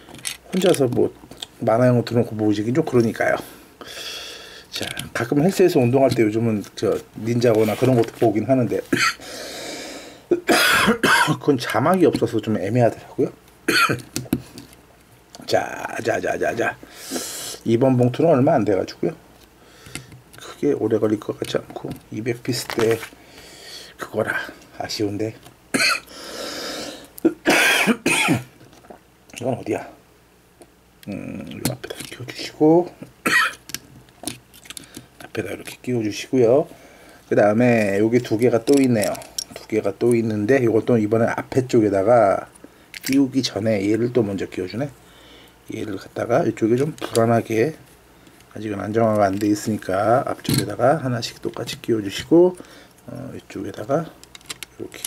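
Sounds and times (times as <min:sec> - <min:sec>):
man coughing: 0:08.9 - 0:09.2, 0:10.3 - 0:11.4, 0:13.7 - 0:14.0, 0:25.7 - 0:26.1, 0:27.2 - 0:28.5, 0:33.2 - 0:33.6.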